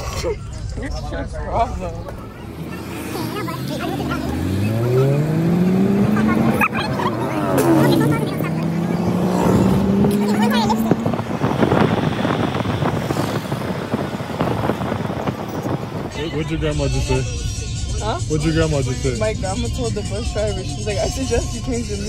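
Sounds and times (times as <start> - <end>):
bus engine accelerating: 0.0 - 22.0
road noise: 0.0 - 22.0.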